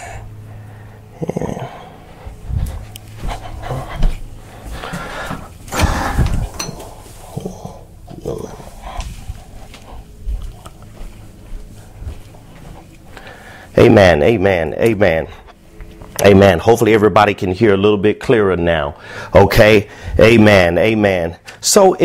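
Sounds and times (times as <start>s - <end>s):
steady low hum: 0.0s - 22.0s
microphone handling bumps and rustles: 2.2s - 7.0s, 8.8s - 13.0s.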